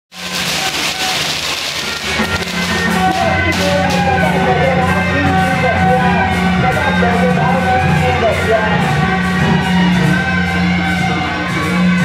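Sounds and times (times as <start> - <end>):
firecrackers crackling: 0.1 - 5.6.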